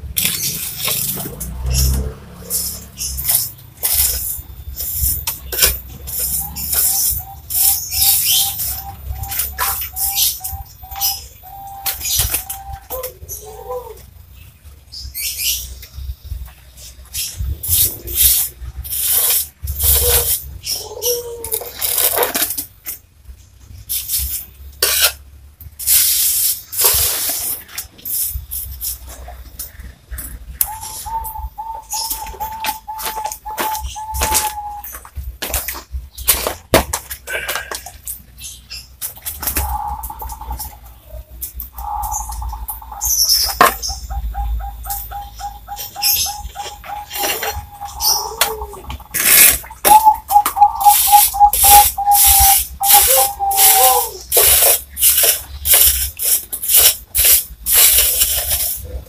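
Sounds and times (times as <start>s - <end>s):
bird calling: 0.3s - 18.3s, 29.7s - 35.2s, 38.4s - 55.6s.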